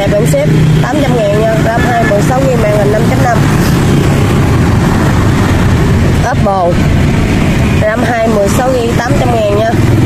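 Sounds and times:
person speaking: 0.0 - 3.9, 6.1 - 7.0, 7.8 - 9.8
loud engine-like rumble: 0.0 - 10.0.

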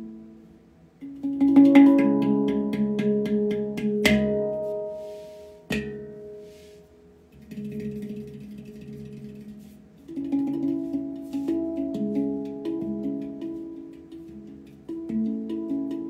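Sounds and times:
handpan notes: 0.0 - 16.0.

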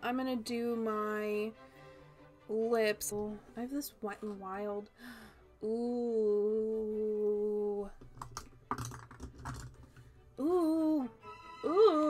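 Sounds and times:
plastic tubes clicking and rattling: 7.9 - 10.2.

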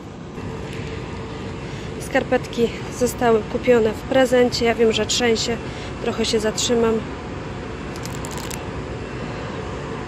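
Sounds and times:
outdoor street background noise: 0.0 - 10.0
plastic packet crackle: 8.0 - 8.6.

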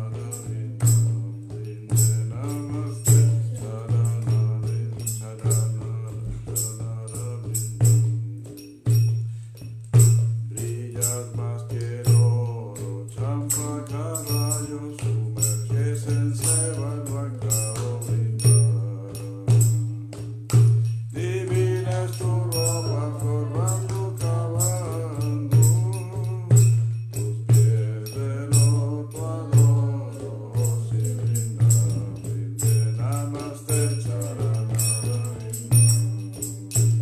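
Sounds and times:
hand drum rhythm: 0.0 - 37.0
man singing a devotional chant: 0.0 - 37.0.

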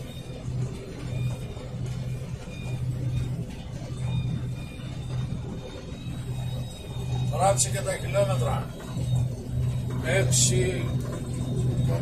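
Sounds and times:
combine harvester drone: 0.0 - 12.0
faint high whine: 0.0 - 12.0.

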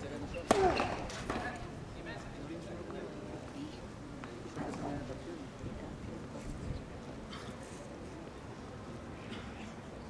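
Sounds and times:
racket striking tennis ball: 0.4 - 1.5.

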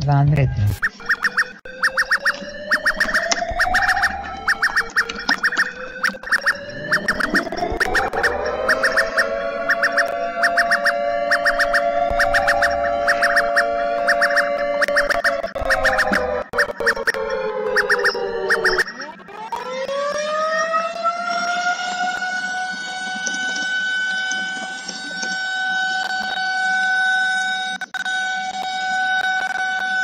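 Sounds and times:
wavering alarm tones: 0.7 - 30.0
rapid chattering clicks: 0.8 - 19.8.

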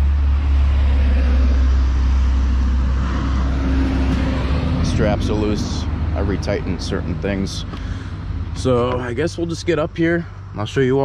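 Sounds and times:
road traffic rumble: 0.0 - 11.0
vehicle engine hum: 0.0 - 11.0.

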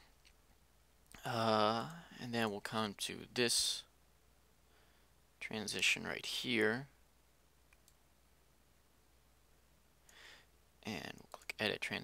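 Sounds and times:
computer mouse clicks: 7.7 - 8.0.

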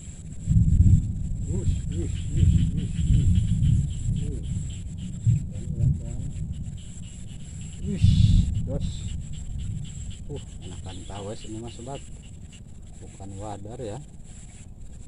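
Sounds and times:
high insect drone: 0.0 - 15.0
wind buffeting microphone: 0.0 - 15.0.

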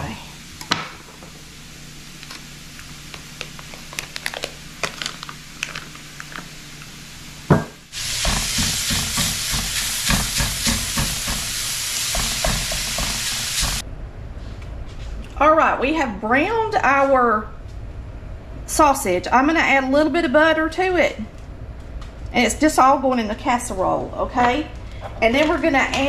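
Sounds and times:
sausage sizzling in a skillet: 5.3 - 13.8
spatula scraping a skillet: 8.0 - 13.8.

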